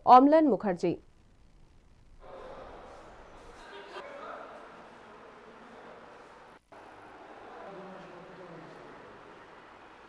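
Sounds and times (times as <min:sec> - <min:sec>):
distant voices: 0:02.2 - 0:10.0.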